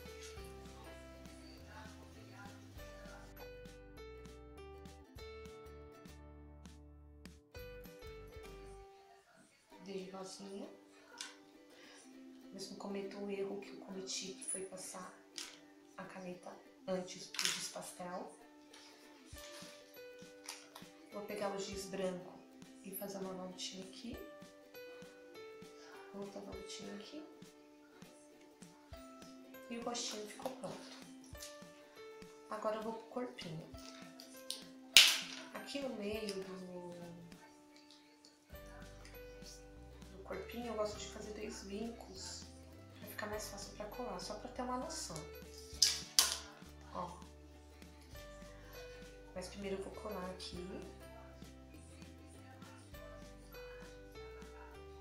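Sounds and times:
quiet background music: 0:00.0 - 0:55.0.

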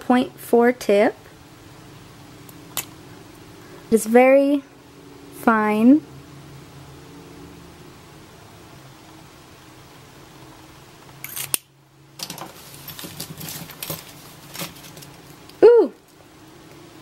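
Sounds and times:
faint room hum: 0:00.0 - 0:17.0.

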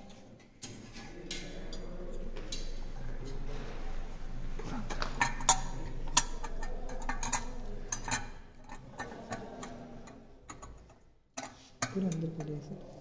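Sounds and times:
sharp metal clicks and taps: 0:06.2 - 0:12.5.

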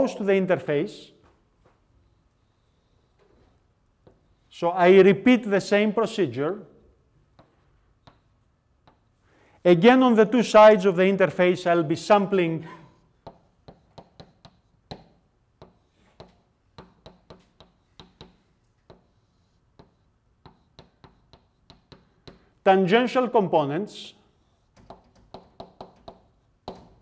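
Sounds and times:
chalk tapping on blackboard: 0:02.0 - 0:04.5, 0:07.3 - 0:09.2, 0:12.8 - 0:22.5, 0:24.3 - 0:27.0.

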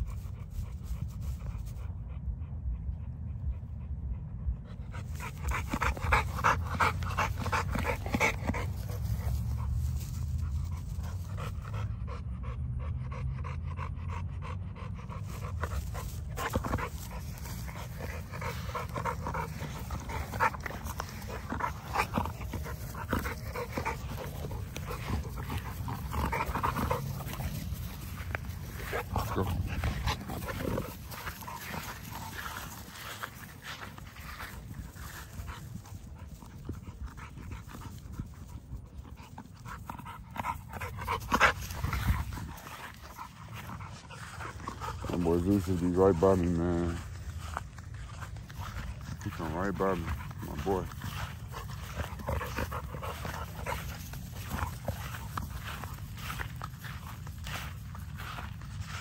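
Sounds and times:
dog panting: 0:00.0 - 0:59.0.

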